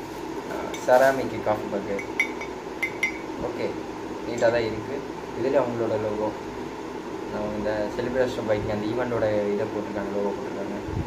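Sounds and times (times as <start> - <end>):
ceramic mug clinking: 2.0 - 3.4.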